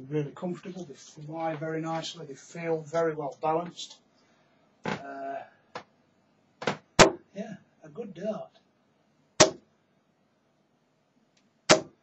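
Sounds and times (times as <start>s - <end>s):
dart striking dartboard: 6.6s - 7.2s, 9.4s - 9.6s, 11.7s - 12.0s.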